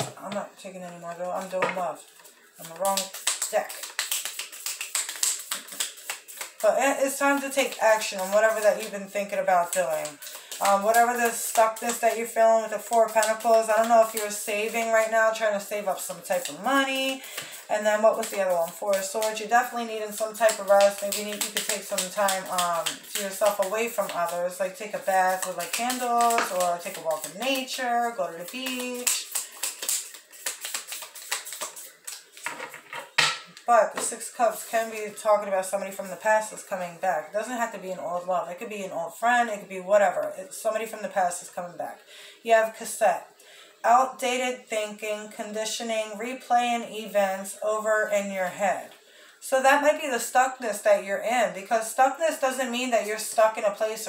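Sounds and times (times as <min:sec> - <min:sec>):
cards being shuffled: 0:01.3 - 0:15.0, 0:16.2 - 0:32.9.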